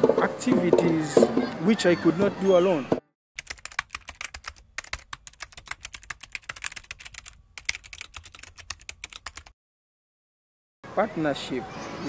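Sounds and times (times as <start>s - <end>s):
keyboard keystroke clicks: 3.4s - 9.5s.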